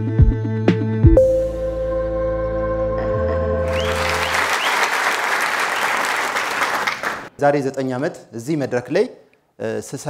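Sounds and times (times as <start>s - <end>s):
held music chord: 1.2s - 4.2s
audience applauding: 3.7s - 7.3s.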